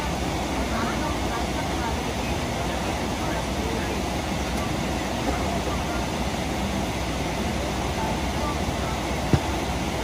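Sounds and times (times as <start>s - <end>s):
airliner cabin noise: 0.0s - 10.0s.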